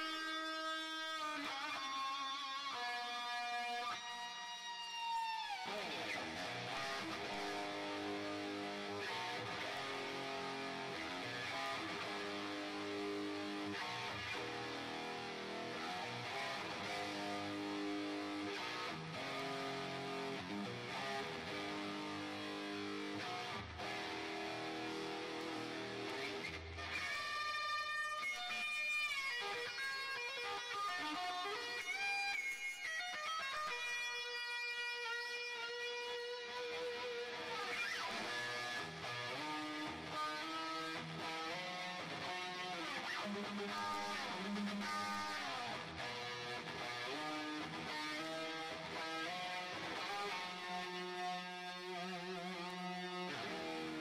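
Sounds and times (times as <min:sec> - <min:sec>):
electric guitar playing: 0:00.0 - 0:54.0.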